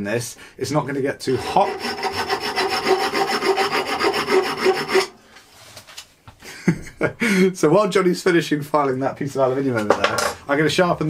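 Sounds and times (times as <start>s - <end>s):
man laughing: 1.3s - 1.9s, 6.4s - 7.6s.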